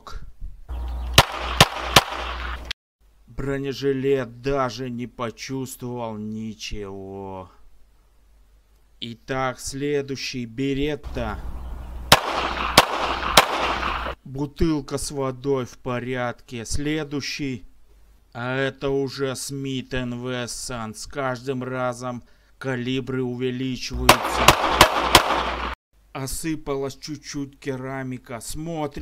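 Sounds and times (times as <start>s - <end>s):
outdoor background noise: 0.0s - 29.0s
pistol shots: 1.2s - 2.6s, 12.1s - 14.2s, 24.0s - 25.8s.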